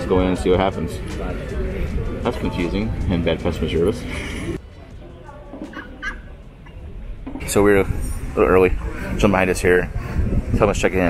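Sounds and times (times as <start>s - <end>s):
duck calling: 5.7s - 6.3s.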